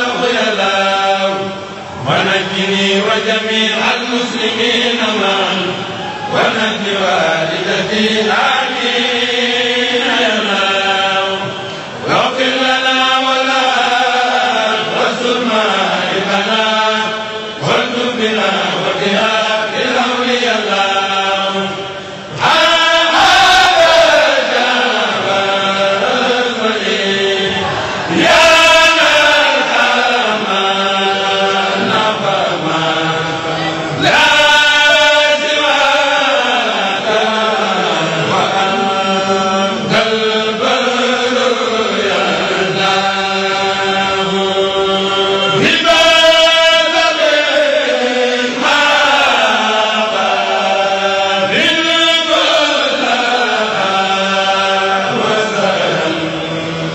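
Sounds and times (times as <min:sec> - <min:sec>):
men's choir chanting in unison: 0:00.0 - 0:56.9.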